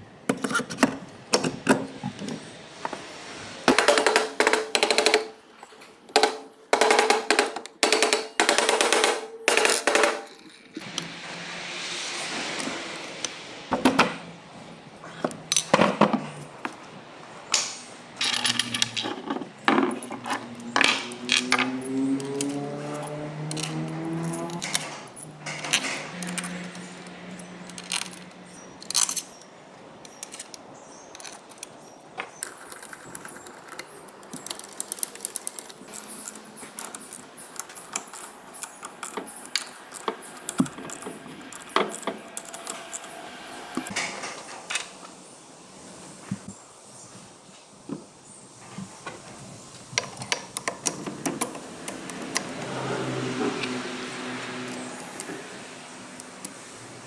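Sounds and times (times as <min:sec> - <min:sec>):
metal parts clanking: 0:18.2 - 0:43.2.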